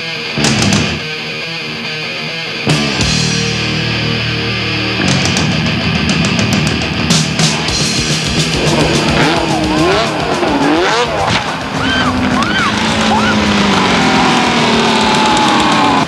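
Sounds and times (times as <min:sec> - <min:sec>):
rock music: 0:00.0 - 0:16.0
snowmobile engine revving: 0:08.2 - 0:16.0.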